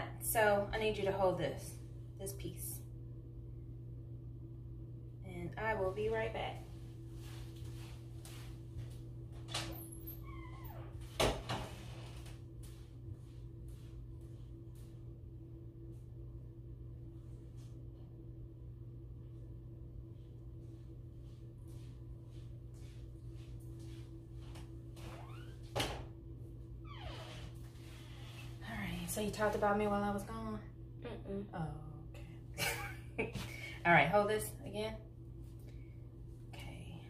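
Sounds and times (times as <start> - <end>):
steady low hum: 0.0 - 37.0
door creaking: 9.5 - 12.1, 25.0 - 26.1, 26.8 - 27.6.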